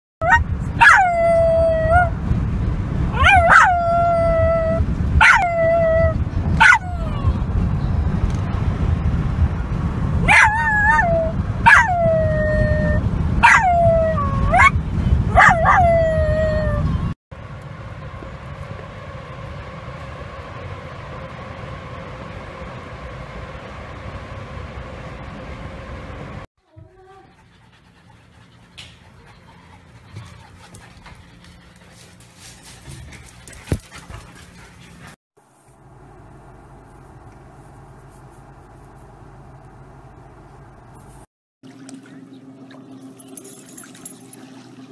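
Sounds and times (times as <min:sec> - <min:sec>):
car interior low rumble: 0:00.2 - 0:27.0, 0:35.0 - 0:44.9
dog howling: 0:03.2 - 0:07.4, 0:10.3 - 0:17.0.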